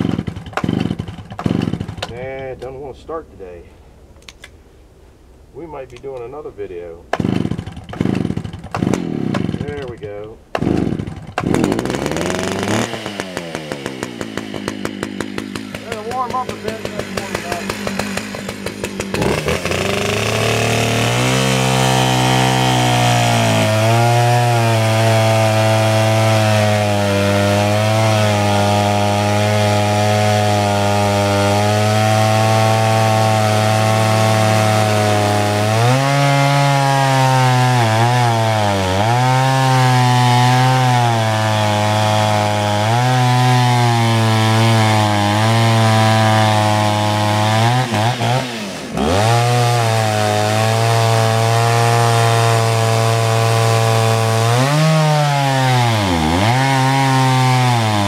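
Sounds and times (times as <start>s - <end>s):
chainsaw cutting through log: 0.0s - 2.9s, 5.9s - 58.0s.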